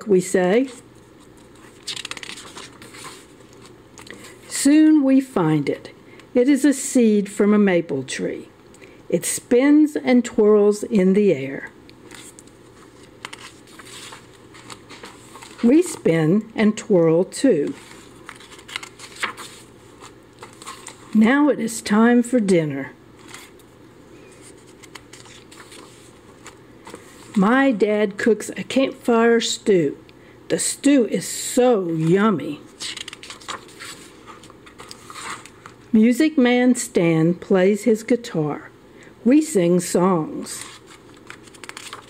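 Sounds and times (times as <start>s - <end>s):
soft paper rustling: 0.4s - 4.7s, 12.0s - 27.8s, 31.8s - 36.0s, 40.4s - 42.0s
book page turning: 0.6s - 4.5s, 12.0s - 16.1s, 17.6s - 21.2s, 23.2s - 23.7s, 24.3s - 27.5s, 31.9s - 35.9s, 40.6s - 42.0s.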